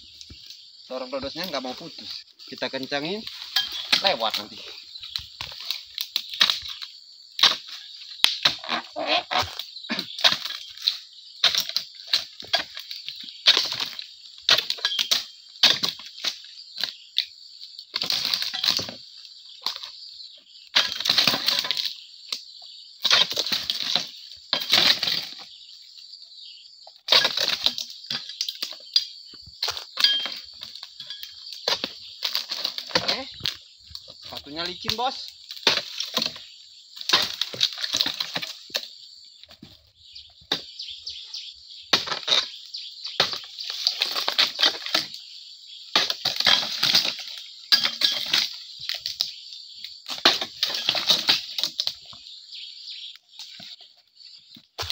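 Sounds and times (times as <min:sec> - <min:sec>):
dry palm fronds rustling: 0:29.6 - 0:38.9.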